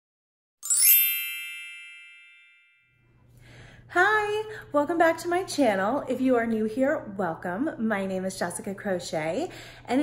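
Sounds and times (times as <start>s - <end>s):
bright chime ringing: 0.6s - 3.1s
woman speaking: 3.9s - 10.0s.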